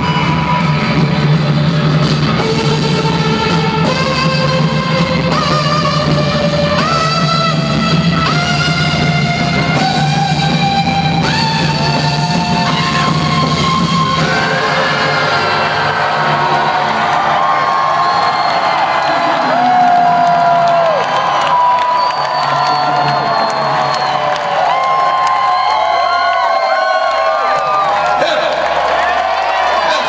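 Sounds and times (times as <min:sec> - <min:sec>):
arena crowd cheering and whooping: 0:00.0 - 0:03.7, 0:11.2 - 0:30.0
rock music: 0:00.0 - 0:30.0.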